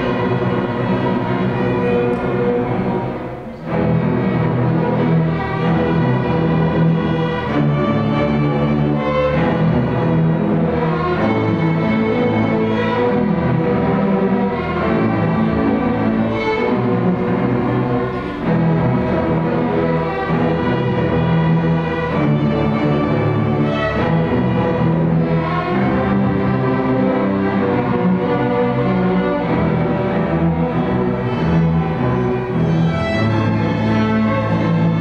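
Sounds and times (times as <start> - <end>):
string orchestra playing: 0.0 - 35.0.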